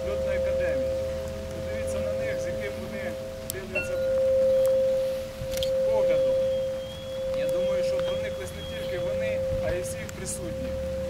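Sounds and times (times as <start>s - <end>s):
faint voices: 0.0s - 11.0s
steady ringing tone: 0.0s - 11.0s
thinner higher tone: 0.0s - 11.0s.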